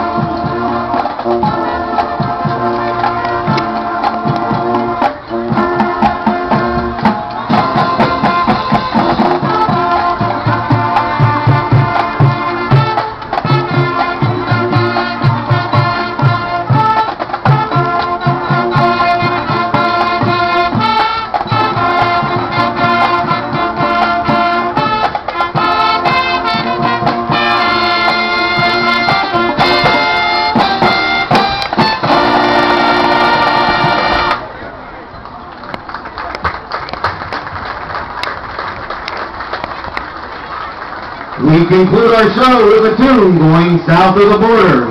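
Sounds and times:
marching band playing: 0:00.0 - 0:34.8, 0:35.8 - 0:44.9.

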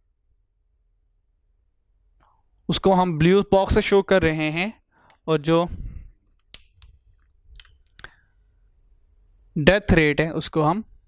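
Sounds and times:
marker clicks: 0:06.3 - 0:08.2.

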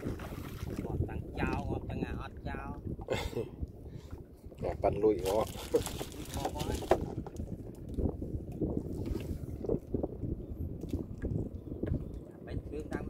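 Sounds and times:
light water splashes: 0:00.0 - 0:09.9
wind buffeting microphone: 0:00.0 - 0:13.0.

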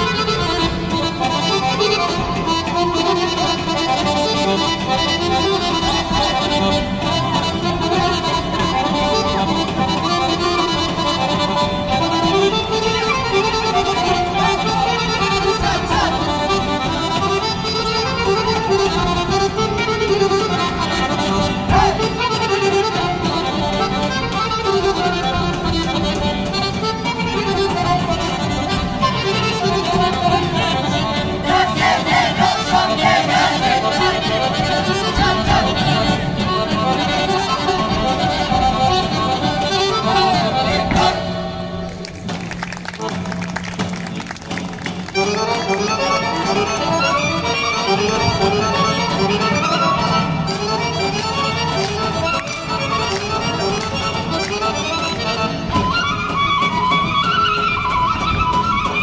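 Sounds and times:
accordion melody: 0:00.0 - 0:59.0.

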